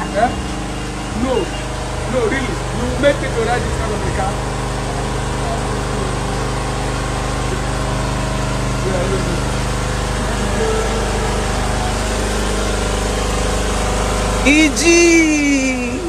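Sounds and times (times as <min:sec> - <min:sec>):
engine hum: 0:00.0 - 0:16.0
faint voices: 0:00.0 - 0:16.0.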